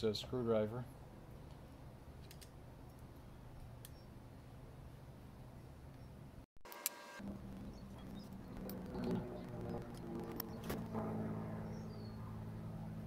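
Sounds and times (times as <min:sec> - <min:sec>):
sharp metal ticks: 0:07.6 - 0:10.9.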